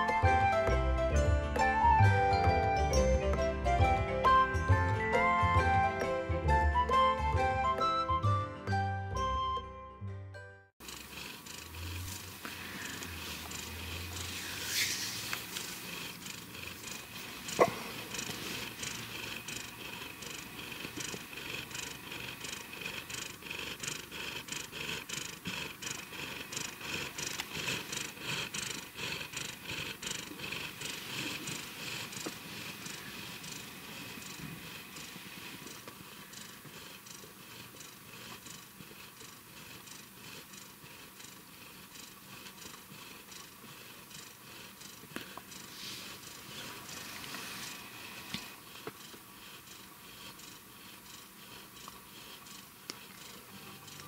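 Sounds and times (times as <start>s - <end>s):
cat purring: 10.8s - 54.0s.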